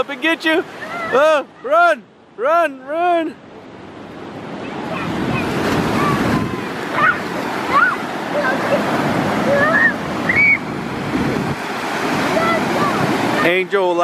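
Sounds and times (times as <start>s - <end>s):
ocean surf breaking on beach: 0.0s - 14.0s.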